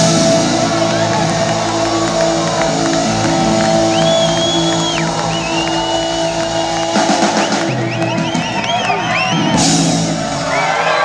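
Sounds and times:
long high whistles: 0.1s - 9.8s.

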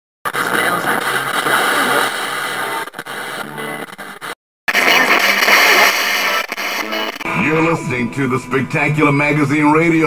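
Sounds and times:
radio static hiss: 0.3s - 7.7s
broken radio voices: 0.3s - 8.0s.

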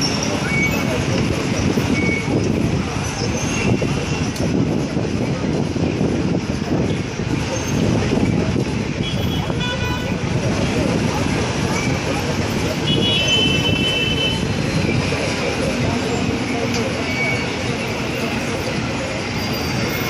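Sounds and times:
traffic engines: 0.0s - 20.0s
voices: 0.0s - 20.0s
car horn toot: 9.0s - 10.1s, 12.9s - 14.4s.

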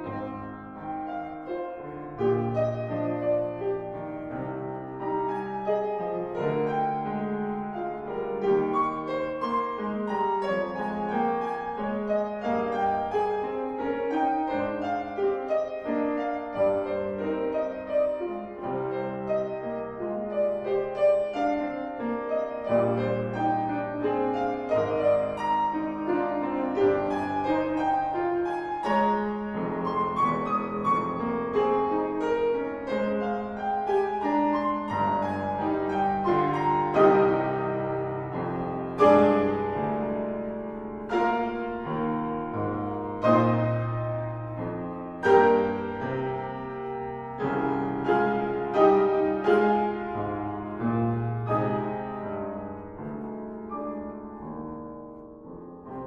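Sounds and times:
classical piano duet: 0.0s - 56.0s.

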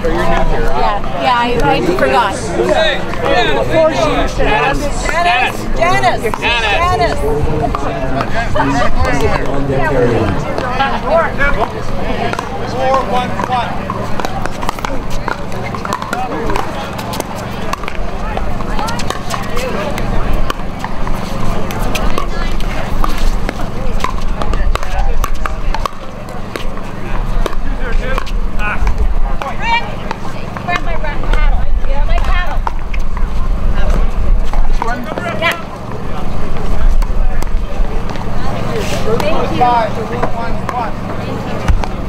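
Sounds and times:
voices chattering: 0.0s - 42.0s
low rumble: 6.5s - 10.6s.

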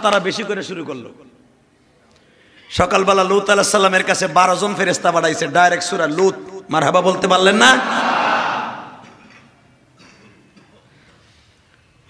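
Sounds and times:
amplified voice echoing: 0.0s - 1.4s, 2.8s - 9.3s.

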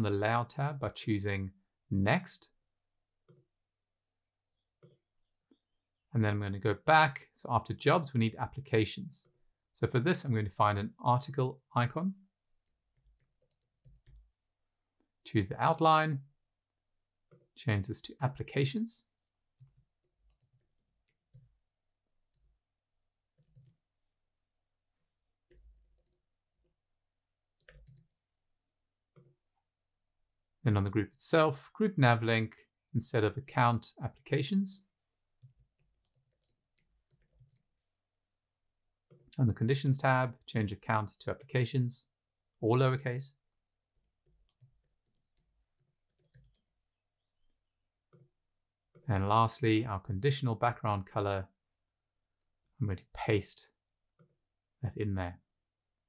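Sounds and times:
keyboard typing clicks: 23.4s - 23.8s, 27.6s - 28.2s, 46.1s - 46.6s.

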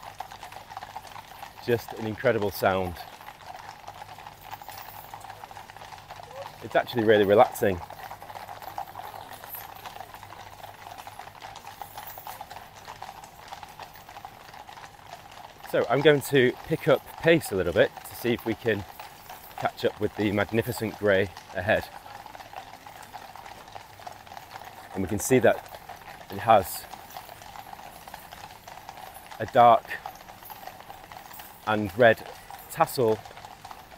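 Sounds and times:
horse hooves clip-clopping on road: 0.0s - 33.9s.

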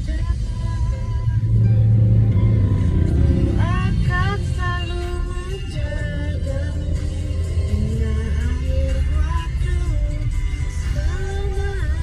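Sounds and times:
car cabin road rumble: 0.0s - 12.0s.

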